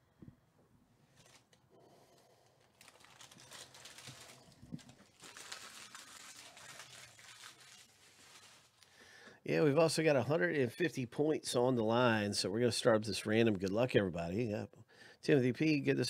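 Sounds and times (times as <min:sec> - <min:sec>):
trading cards and foil wrappers crinkling: 0:01.0 - 0:09.0.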